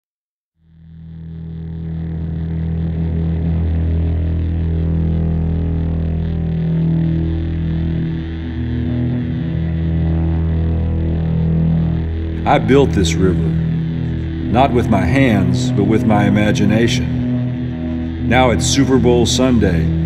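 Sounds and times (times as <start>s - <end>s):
low drone music: 0.6s - 20.0s.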